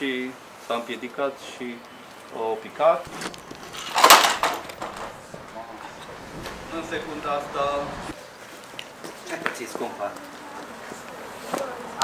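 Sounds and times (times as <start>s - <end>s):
kick scooter crashing onto asphalt: 3.1s - 7.8s.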